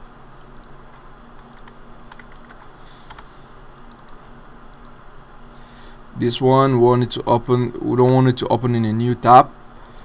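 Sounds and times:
faint low hum: 0:00.0 - 0:10.0
computer keys tapping: 0:00.5 - 0:03.2, 0:03.8 - 0:05.0.

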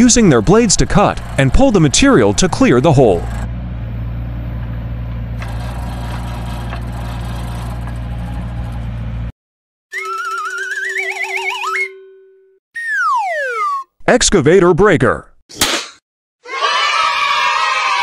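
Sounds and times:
excavator engine running: 0:00.0 - 0:09.3
auger drilling into soil: 0:05.4 - 0:08.0
cartoon rising wavering whistle: 0:09.9 - 0:12.2, 0:12.8 - 0:13.9
cartoon whistle gliding down: 0:09.9 - 0:12.2, 0:12.8 - 0:13.9.

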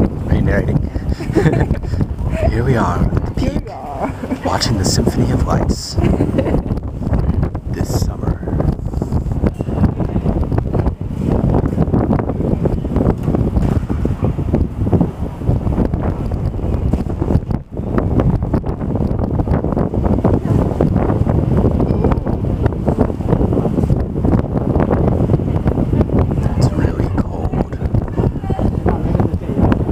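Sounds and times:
wind buffeting microphone: 0:00.0 - 0:29.9.

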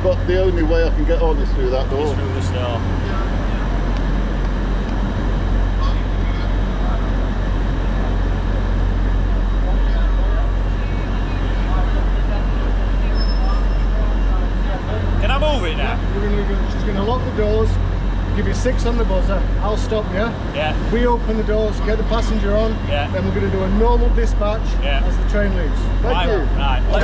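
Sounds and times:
train humming: 0:00.0 - 0:27.0
busy station noise: 0:01.5 - 0:27.0
person speaking: 0:15.0 - 0:17.3, 0:20.3 - 0:21.0, 0:25.9 - 0:27.0.

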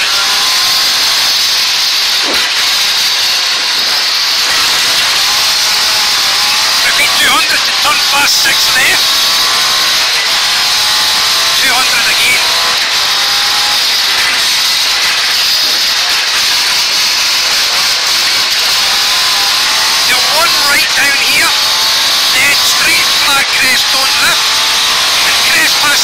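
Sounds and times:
rally car engine running hard: 0:00.0 - 0:26.0
person speaking: 0:06.9 - 0:09.1, 0:11.6 - 0:12.6, 0:20.0 - 0:21.6, 0:22.4 - 0:24.5, 0:25.2 - 0:26.0.

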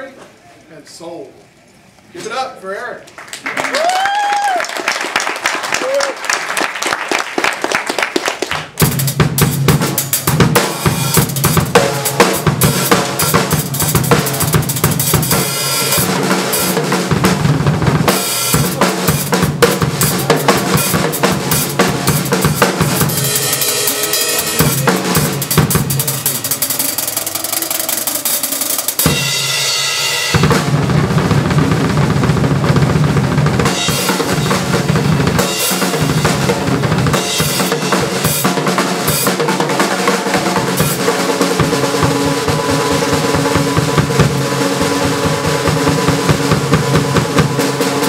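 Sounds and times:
fast drum roll: 0:07.4 - 0:48.0
cymbals ringing: 0:10.0 - 0:16.8, 0:18.1 - 0:30.5, 0:39.8 - 0:48.0.

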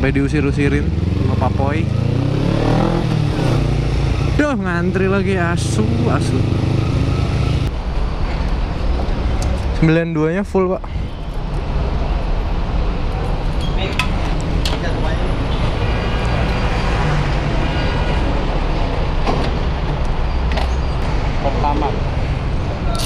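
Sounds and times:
engine and traffic rumble: 0:00.0 - 0:23.0.

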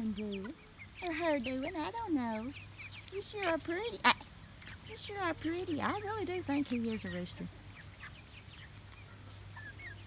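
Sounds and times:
chickens calling: 0:00.0 - 0:10.0.

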